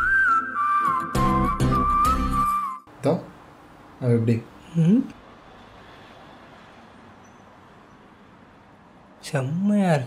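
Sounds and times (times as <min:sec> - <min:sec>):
faint road traffic: 0:02.9 - 0:10.0.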